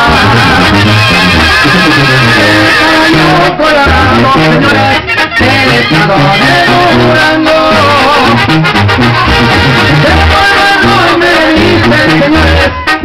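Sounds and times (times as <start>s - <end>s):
live band music: 0.0s - 13.0s.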